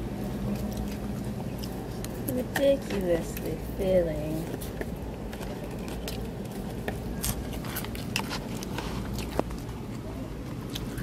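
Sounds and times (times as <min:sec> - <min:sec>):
chewing: 0:00.0 - 0:03.6, 0:04.4 - 0:11.0
low outdoor background noise: 0:00.0 - 0:11.0.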